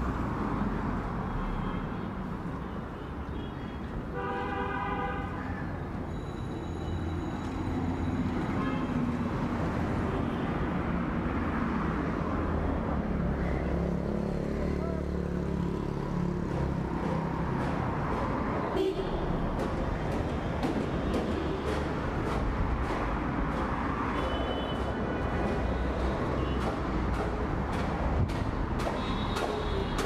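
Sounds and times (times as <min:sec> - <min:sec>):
vehicle horn: 0:18.8 - 0:19.2.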